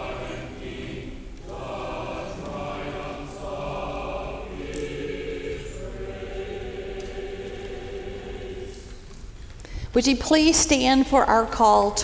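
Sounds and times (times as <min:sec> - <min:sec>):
church choir singing: 0:00.0 - 0:09.4.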